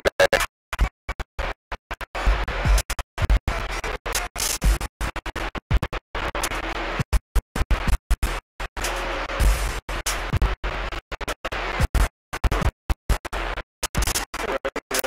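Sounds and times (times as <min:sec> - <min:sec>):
garbled radio audio: 0:00.0 - 0:15.0.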